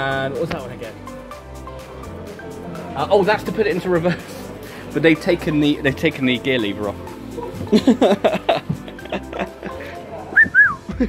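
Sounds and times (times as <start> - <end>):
background music: 0.0 - 11.0
whistled notes: 10.3 - 10.9.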